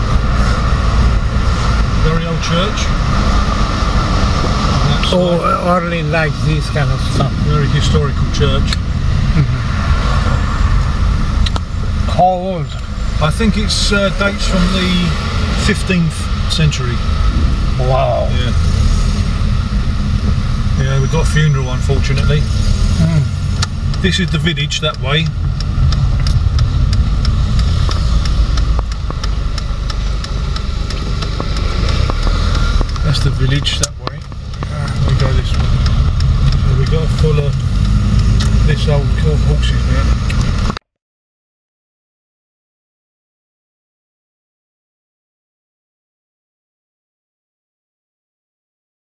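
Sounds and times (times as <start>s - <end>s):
engine and road rumble: 0.0s - 40.9s
light regular ticking: 19.6s - 40.8s.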